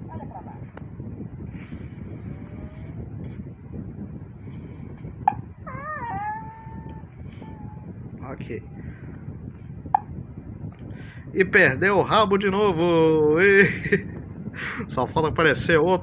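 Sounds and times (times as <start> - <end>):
low hum: 0.0 - 14.6
high wavering voice-like cry: 5.6 - 8.0.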